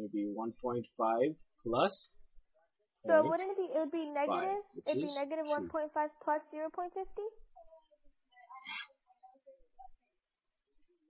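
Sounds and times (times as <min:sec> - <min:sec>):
murmur of voice over call line: 0:02.6 - 0:10.3.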